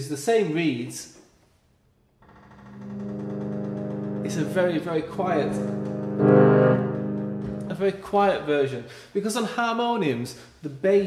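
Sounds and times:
harmonium held bass tone: 0:02.8 - 0:07.8.

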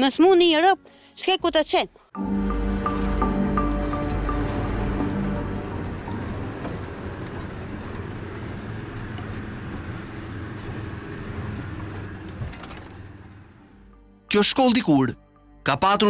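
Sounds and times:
car engine and road noise: 0:02.1 - 0:15.1.

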